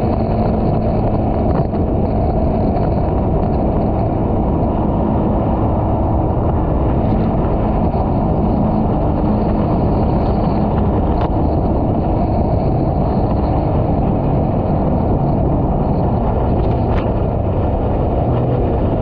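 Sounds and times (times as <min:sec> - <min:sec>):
jet boat engine drone: 0:00.0 - 0:19.0
water rushing along hull: 0:00.0 - 0:19.0.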